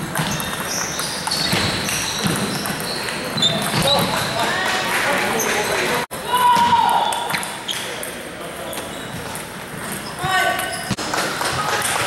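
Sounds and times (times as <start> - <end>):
table tennis balls clicking: 0.0 - 4.3
crowd of voices: 2.8 - 12.0.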